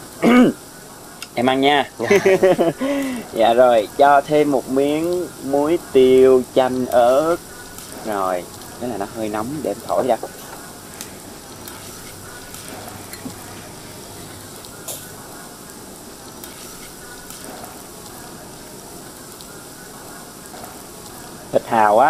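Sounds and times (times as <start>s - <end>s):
oysters sizzling on a grill: 0.0s - 22.0s
faint clicks: 1.2s - 1.4s.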